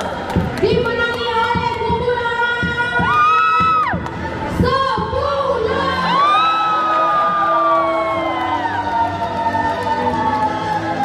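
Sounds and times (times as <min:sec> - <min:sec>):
background music: 0:00.0 - 0:11.0
cheering shouts on microphone: 0:05.7 - 0:11.0.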